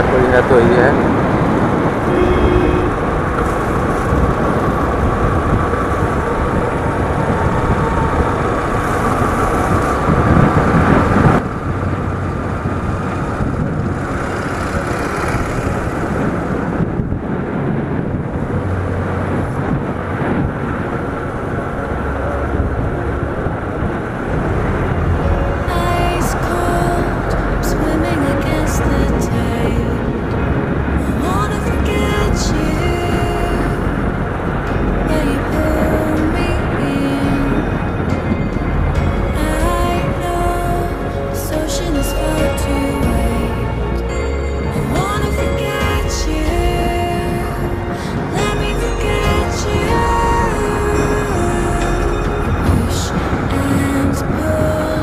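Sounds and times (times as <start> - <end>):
road noise: 0.0 - 55.0
wind noise: 0.0 - 55.0.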